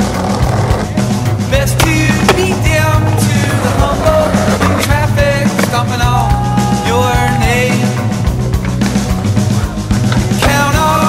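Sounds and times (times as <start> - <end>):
rock music: 0.0 - 11.0
skateboard wheels rolling on concrete: 0.0 - 11.0.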